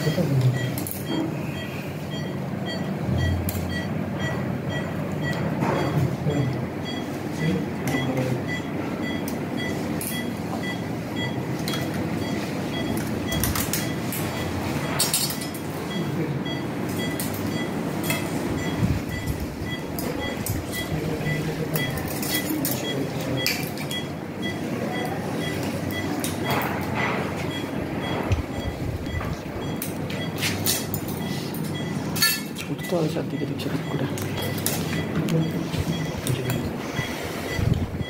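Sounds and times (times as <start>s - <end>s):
patient monitor beeping: 0.0s - 38.0s
room noise: 0.0s - 38.0s.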